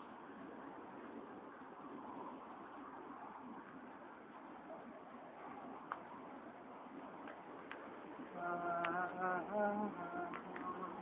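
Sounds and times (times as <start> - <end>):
faint street background noise: 0.0 - 11.0.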